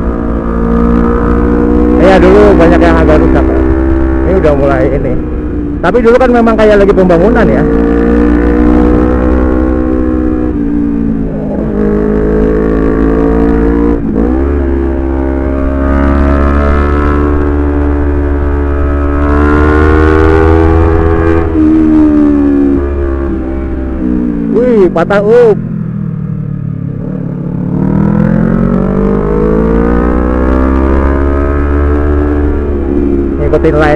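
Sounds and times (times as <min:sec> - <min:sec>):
motorcycle engine revving: 0:00.0 - 0:33.9.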